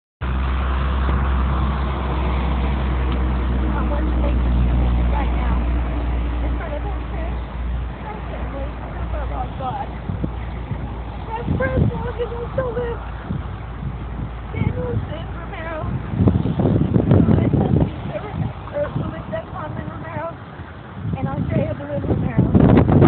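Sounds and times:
steady low rumble: 0.2 - 23.0
faint voices talking: 3.6 - 13.4.

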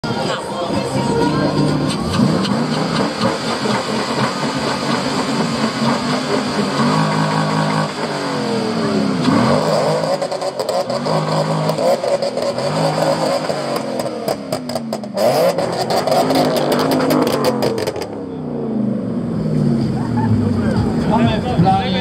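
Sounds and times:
car engine revving: 0.0 - 22.0.

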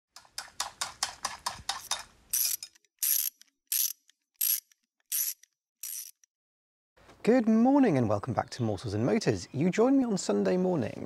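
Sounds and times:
ratchet-like clicks: 0.8 - 6.3.

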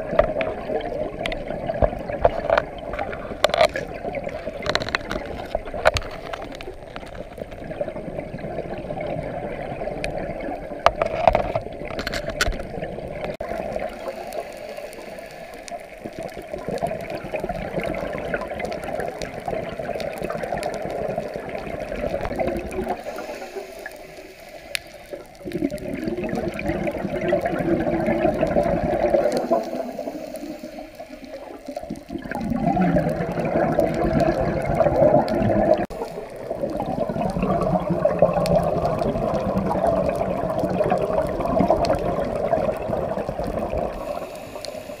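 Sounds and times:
faint clicks and crackles: 0.0 - 45.0
muffled underwater noise: 0.0 - 45.0.

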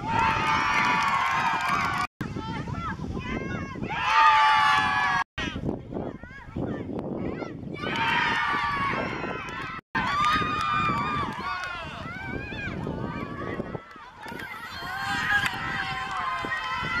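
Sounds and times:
boys shouting and cheering: 0.0 - 17.0.

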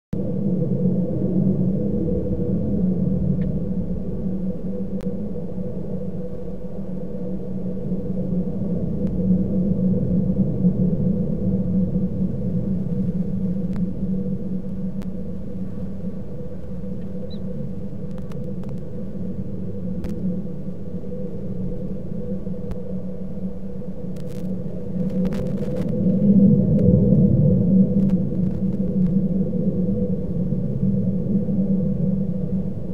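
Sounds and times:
steady low hum: 0.2 - 32.9
faint clicks: 18.0 - 18.9.

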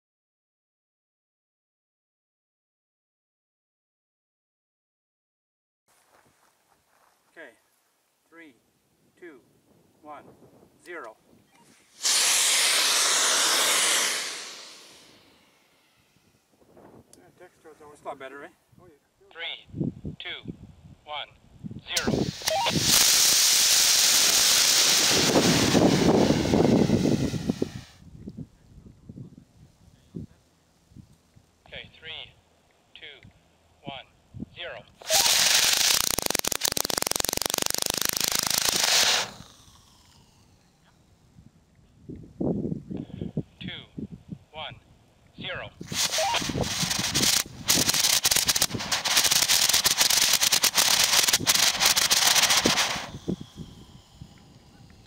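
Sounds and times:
rocket motor roaring: 11.9 - 16.5, 21.9 - 28.1, 35.0 - 41.3, 45.8 - 55.0
faint crackles: 35.0 - 41.0, 45.8 - 55.0.

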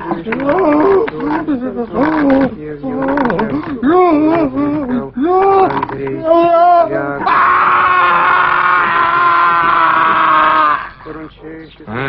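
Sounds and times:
man screaming in pain: 6.3 - 11.0.

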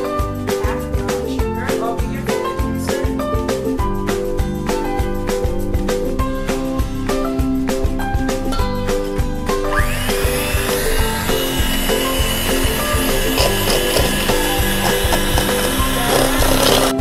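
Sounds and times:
background music: 0.0 - 17.0
electric hand mixer whining: 9.4 - 17.0.

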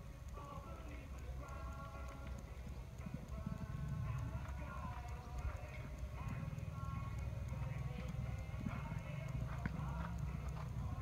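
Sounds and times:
horse hoofbeats on sand: 0.4 - 11.0.

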